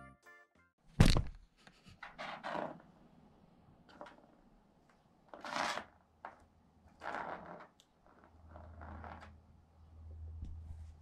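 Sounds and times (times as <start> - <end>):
loud thump: 1.0 - 1.4.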